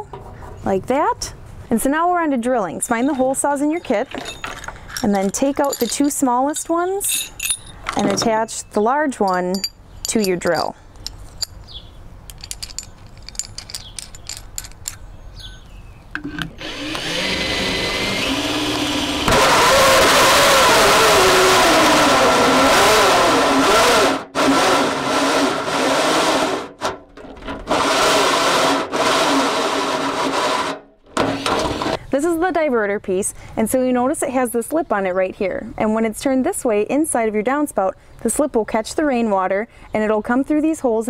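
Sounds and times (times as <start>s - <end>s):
light metal clicks and clinks: 3.0s - 15.0s
hole saw drill cutting metal: 16.6s - 32.0s.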